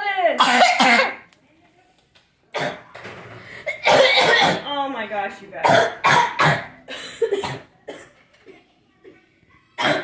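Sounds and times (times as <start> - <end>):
boy coughing: 0.4 - 1.2, 3.6 - 4.7, 5.6 - 9.2, 9.8 - 10.0.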